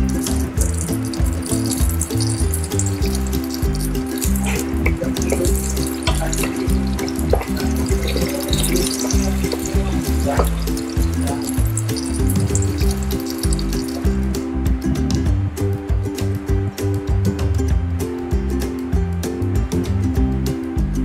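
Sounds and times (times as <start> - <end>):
seeds sizzling in hot oil: 0.0 - 14.1
background music with beat: 0.0 - 21.0.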